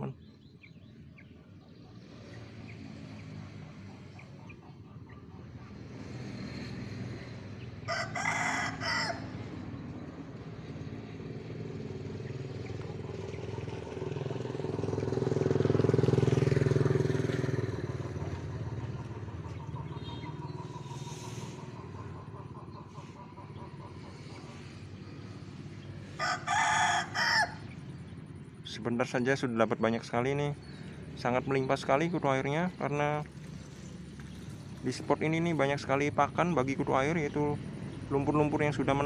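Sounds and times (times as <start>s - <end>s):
vehicle engine passing by: 0.0s - 39.0s
rooster crowing: 7.8s - 9.5s, 26.1s - 27.7s.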